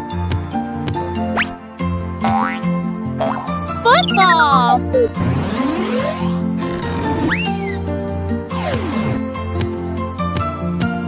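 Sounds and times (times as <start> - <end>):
bright cartoon music: 1.1 - 11.0.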